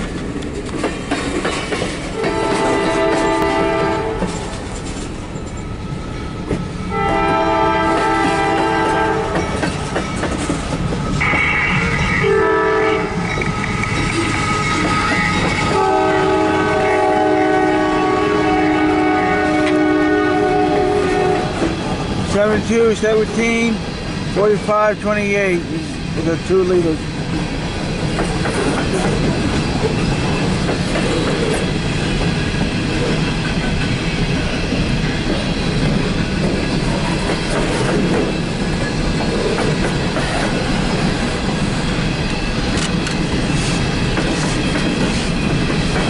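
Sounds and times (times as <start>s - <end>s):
rail cars rumbling and clattering: 0.0s - 46.0s
locomotive air horn: 2.2s - 4.4s, 6.9s - 9.4s, 11.2s - 13.2s, 15.7s - 21.6s.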